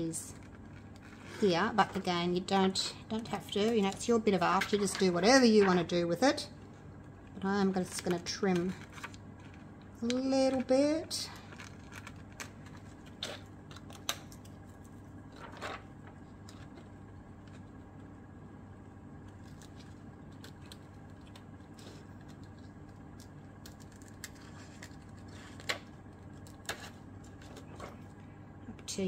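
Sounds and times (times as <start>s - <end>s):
steady low hum: 0.0s - 29.0s
paper sheet crinkling: 11.3s - 17.8s, 19.3s - 28.2s.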